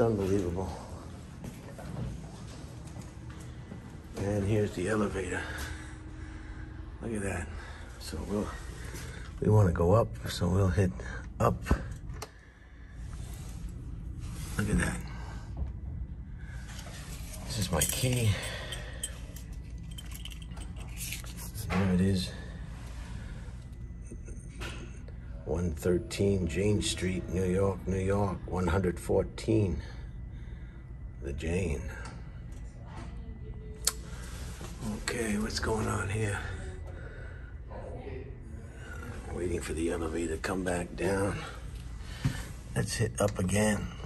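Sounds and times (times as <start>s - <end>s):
low background hum: 0.0s - 44.0s
low steady room noise: 0.0s - 44.0s.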